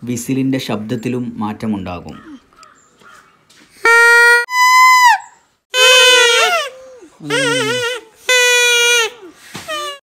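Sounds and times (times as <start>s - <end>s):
plant-stem whistle toots: 3.9s - 6.7s.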